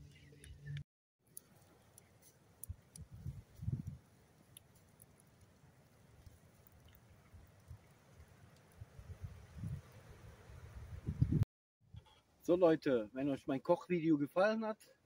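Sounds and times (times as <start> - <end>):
campfire crackling: 0.0 - 11.4.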